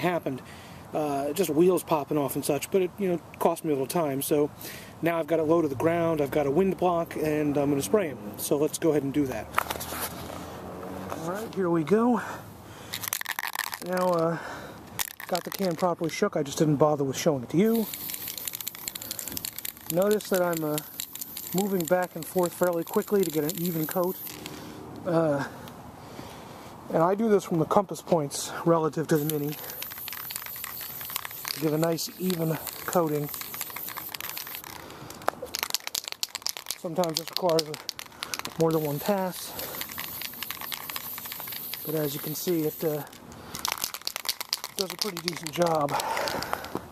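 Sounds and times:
aerosol spray can hissing: 17.7s - 24.5s, 29.1s - 34.8s, 35.5s - 45.9s
crackling: 17.7s - 24.6s, 29.2s - 46.7s.

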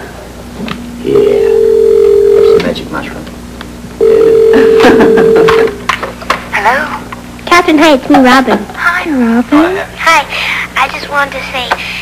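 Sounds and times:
telephone ringback tone: 1.4s - 2.6s, 4.0s - 5.7s.

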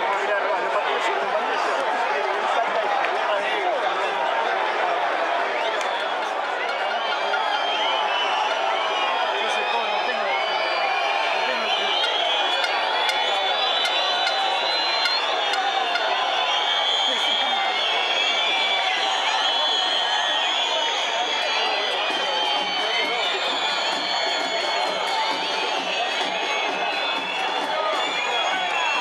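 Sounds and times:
stadium crowd shouting and chanting: 0.0s - 29.0s.

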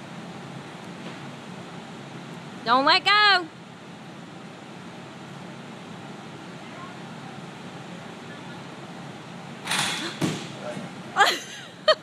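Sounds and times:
floor fan running: 0.0s - 12.0s.

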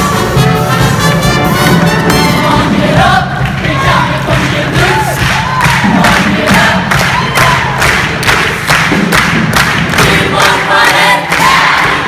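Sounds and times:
backing music with steady beat: 0.0s - 12.0s
group voices singing and shouting: 0.2s - 12.0s.

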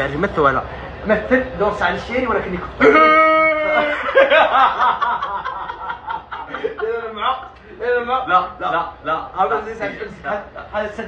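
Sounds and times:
man laughing: 2.8s - 7.4s.

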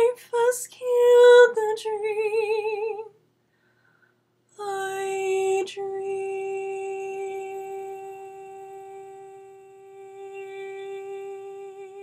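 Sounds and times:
woman singing long note: 4.6s - 12.0s.

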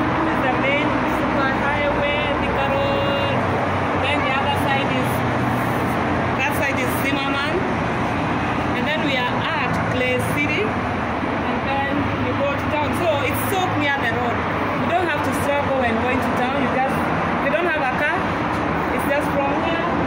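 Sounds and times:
people talking: 0.0s - 3.4s, 4.0s - 5.3s, 6.4s - 7.7s, 8.7s - 10.8s, 11.4s - 18.3s, 18.9s - 20.0s
highway traffic noise: 0.0s - 20.0s.

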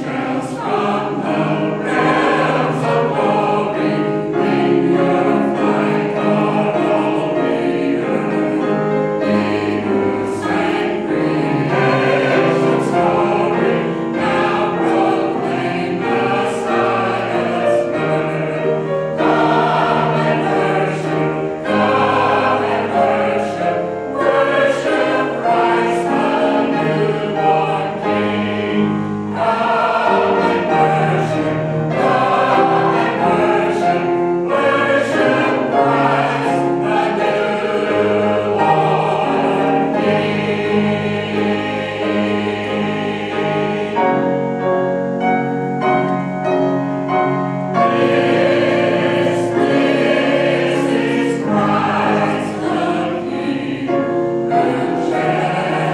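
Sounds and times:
mixed choir singing: 0.0s - 55.9s.

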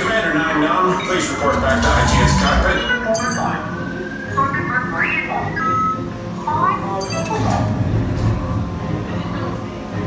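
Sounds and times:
background music: 0.0s - 10.0s
sci-fi electronic beeps and tones: 0.8s - 6.2s, 6.8s - 7.8s.

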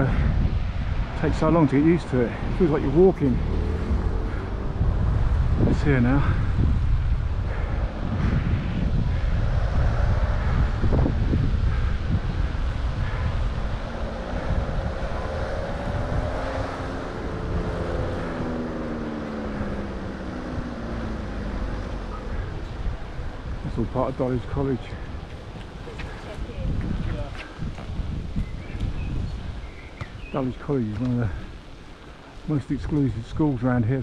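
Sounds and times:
wind buffeting a microphone: 0.0s - 34.0s.

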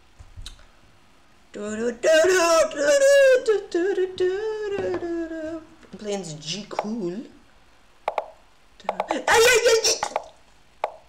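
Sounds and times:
loud wordless vocal outburst: 1.5s - 5.9s, 9.0s - 10.4s.

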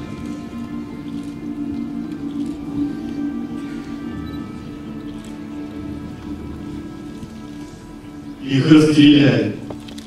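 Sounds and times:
soft background music low chords: 0.0s - 10.0s.

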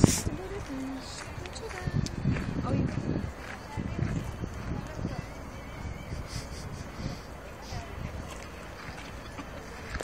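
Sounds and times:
faint outdoor background noise: 0.0s - 10.0s
wind buffeting microphone: 0.0s - 10.0s.

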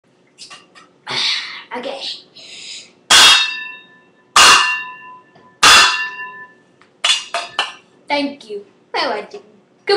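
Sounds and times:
saucepans clanging together: 3.1s - 7.9s.

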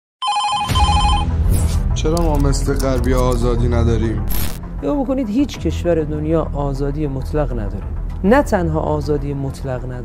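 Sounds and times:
repeating electronic ringing tone: 0.2s - 1.4s
sharp hit: 4.2s - 4.6s.

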